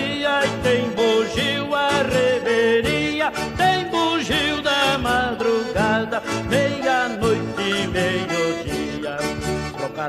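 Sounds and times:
accordion melody: 0.0s - 10.0s
backing instruments with steady beat: 0.0s - 10.0s.

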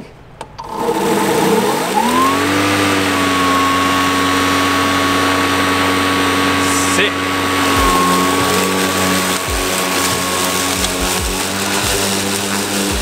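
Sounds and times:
electric lawn mower running: 0.4s - 13.0s.

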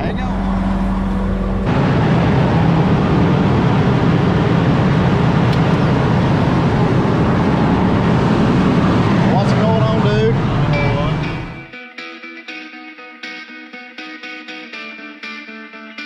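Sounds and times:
harvester engine drone: 0.0s - 11.7s.

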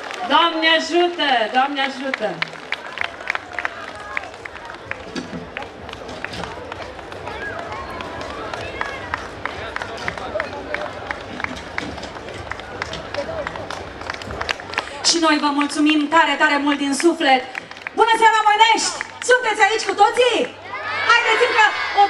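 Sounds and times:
audience clapping: 0.0s - 20.6s
crowd chatter: 0.0s - 22.0s.

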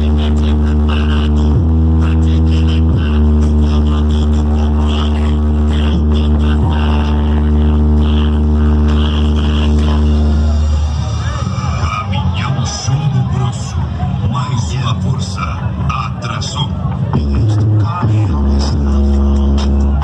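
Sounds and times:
deep buzzing bass note: 0.0s - 11.9s, 17.2s - 20.0s
loud electronic music: 0.0s - 20.0s.

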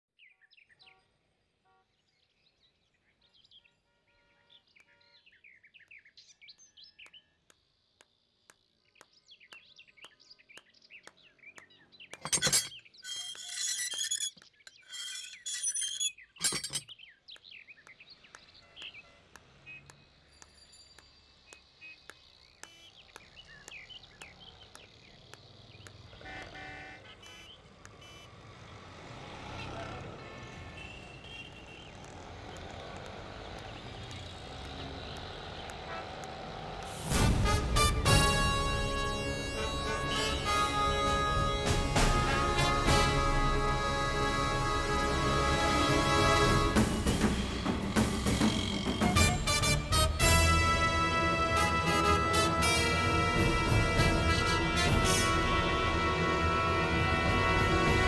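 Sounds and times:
street traffic: 0.4s - 58.0s
birds chirping: 1.9s - 28.9s, 30.4s - 36.2s
iron gate rattling: 12.2s - 16.9s.

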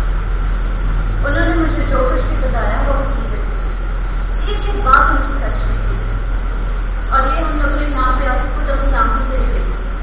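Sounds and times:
constant hiss: 0.0s - 10.0s
low hum: 0.0s - 10.0s.

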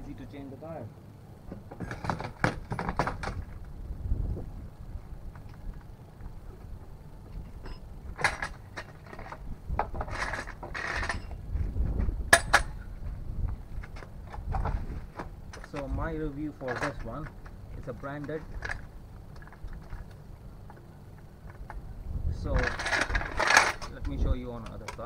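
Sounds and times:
steady low rumble: 2.6s - 25.0s
metal jack clicks and rattles: 22.4s - 25.0s.

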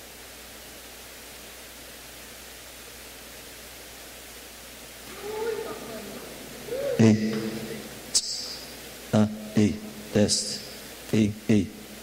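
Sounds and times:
microphone hiss: 0.0s - 12.0s
man calling into microphone: 5.0s - 12.0s.

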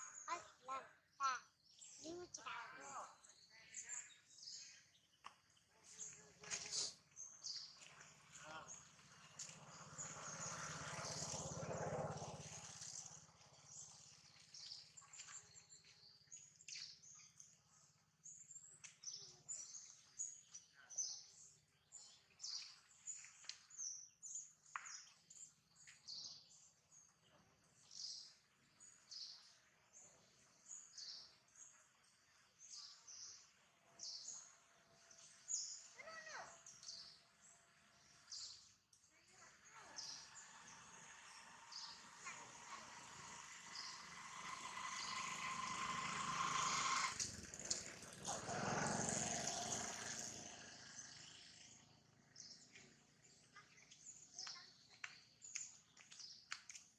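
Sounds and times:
small birds chirping: 0.0s - 56.9s.

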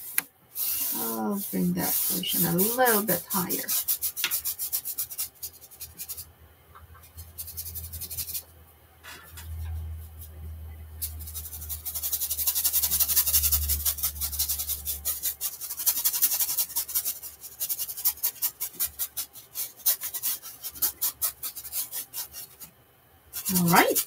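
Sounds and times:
paintbrush scrubbing on canvas: 0.0s - 6.2s, 11.0s - 22.7s, 23.3s - 24.0s.

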